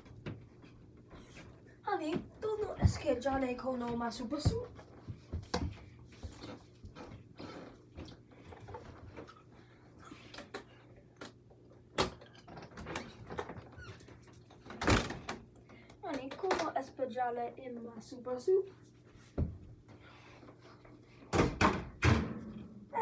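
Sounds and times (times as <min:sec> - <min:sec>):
ball bouncing: 0:02.7 - 0:05.8.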